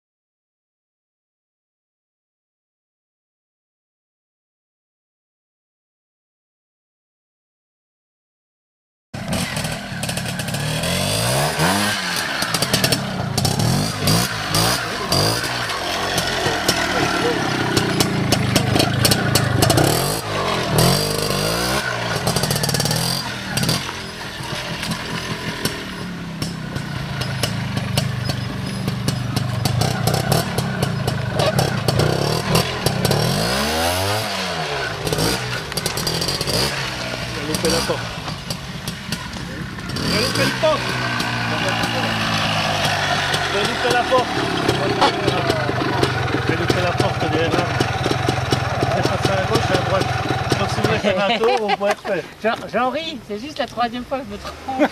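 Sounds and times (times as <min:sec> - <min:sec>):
motorcycle engine revving: 0:09.2 - 0:52.2.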